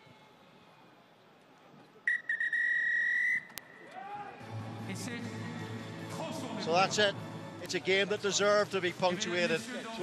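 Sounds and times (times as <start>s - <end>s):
referee's whistle blast: 2.1s - 3.6s
music: 4.4s - 10.0s.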